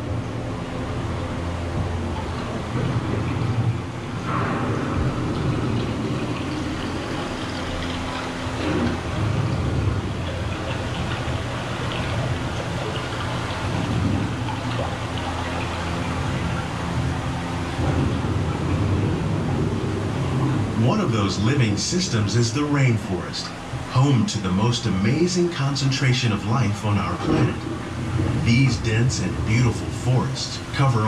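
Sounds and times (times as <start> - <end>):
rain-like rushing: 0.0 - 31.0
steady low hum: 0.0 - 31.0.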